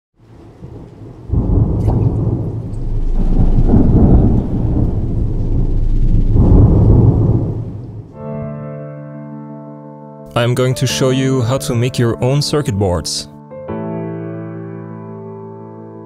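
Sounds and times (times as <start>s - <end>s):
rain-like hiss: 0.2s - 8.0s
deep rolling rumble: 0.2s - 8.5s.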